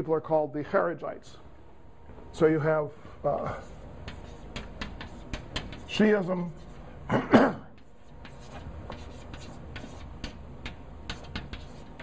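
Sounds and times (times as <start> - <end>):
chalk scratching on blackboard: 3.4 - 6.9, 7.8 - 12.0.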